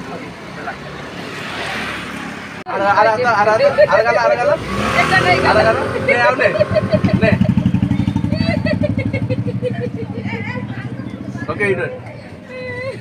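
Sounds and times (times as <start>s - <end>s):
people's voices: 0.0s - 13.0s.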